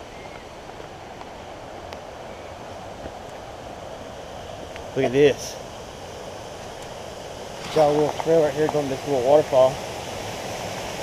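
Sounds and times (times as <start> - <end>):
creek water rushing: 0.0 - 11.0.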